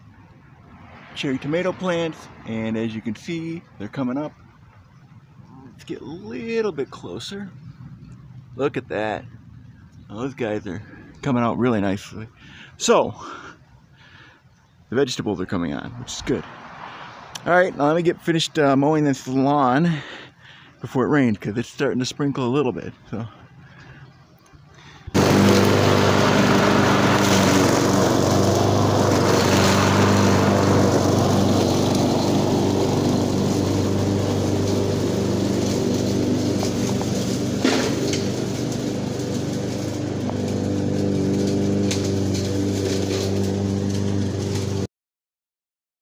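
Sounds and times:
lawn mower engine running: 25.1s - 44.9s.

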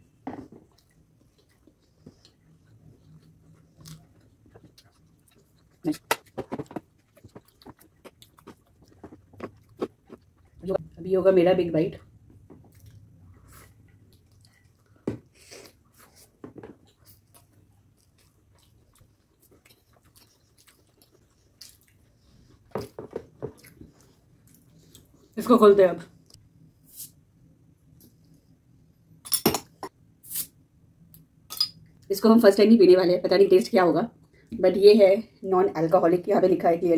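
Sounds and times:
close-miked wet chewing: 0.7s - 10.9s, 12.7s - 16.2s, 16.8s - 22.7s.

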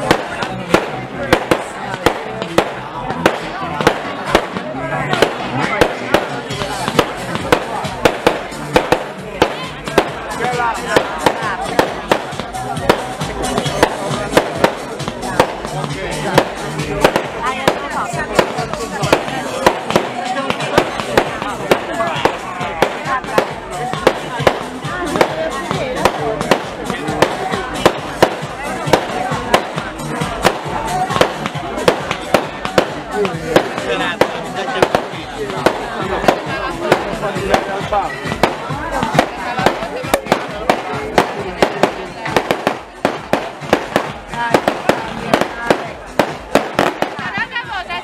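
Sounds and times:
fireworks bursting with sharp bangs: 0.0s - 48.0s
music: 0.0s - 48.0s
voices: 0.0s - 48.0s.

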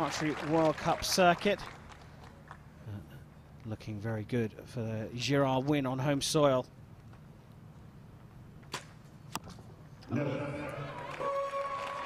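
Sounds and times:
arrow striking target: 8.7s - 9.5s.

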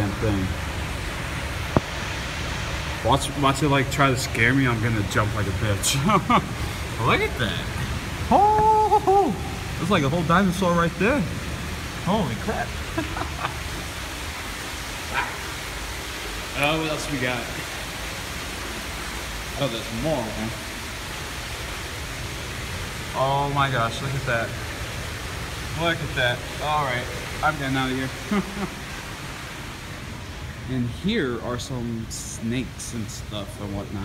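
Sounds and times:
steady background hiss: 0.0s - 34.0s.

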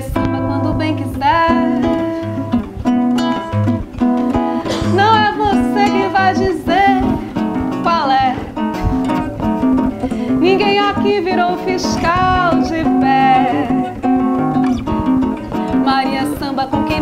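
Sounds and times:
women singing: 0.0s - 2.2s, 4.6s - 8.6s, 10.3s - 14.1s, 15.8s - 17.0s
classical guitar strumming: 0.0s - 17.0s.

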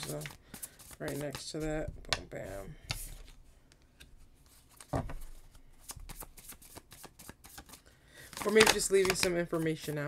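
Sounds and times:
cards being shuffled: 0.0s - 1.7s, 4.0s - 10.0s.

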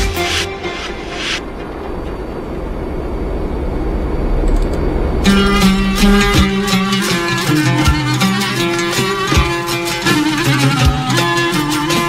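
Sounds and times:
low rumbling noise: 0.6s - 8.7s.

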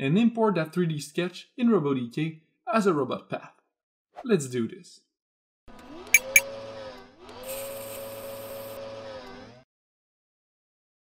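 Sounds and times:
machine-like whirring tone: 6.0s - 9.6s.

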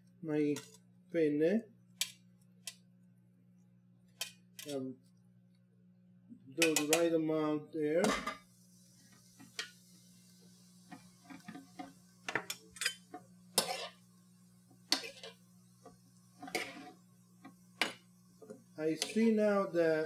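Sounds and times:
low steady hum: 0.0s - 20.0s
metal tongs clattering in a pan: 11.3s - 14.0s, 14.9s - 15.4s, 19.0s - 19.3s.

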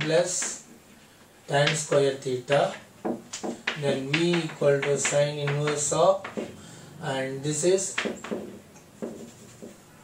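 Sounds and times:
chalk scratching on blackboard: 9.0s - 10.0s.

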